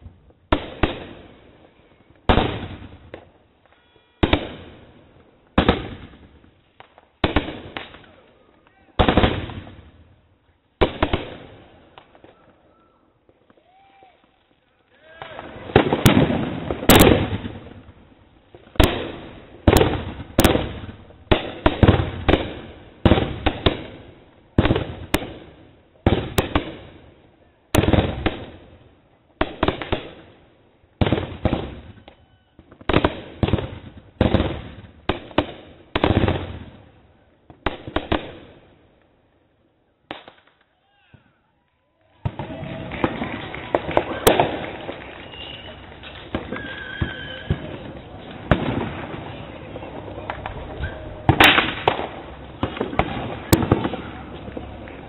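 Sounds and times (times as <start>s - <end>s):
fireworks bangs with echo: 0.0s - 10.2s, 10.8s - 13.9s, 15.0s - 28.8s, 29.4s - 30.4s, 31.0s - 38.7s, 42.2s - 55.0s.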